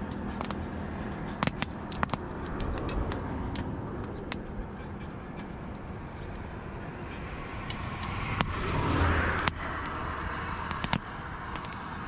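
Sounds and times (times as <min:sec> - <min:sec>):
wood fire crackling: 0:00.0 - 0:11.9
traffic background: 0:00.0 - 0:12.0
vehicle passing: 0:00.0 - 0:12.0.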